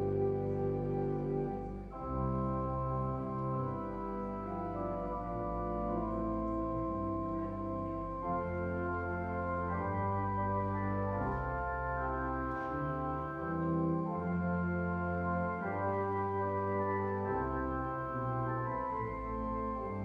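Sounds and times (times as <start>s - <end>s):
church organ playing: 0.0s - 20.0s.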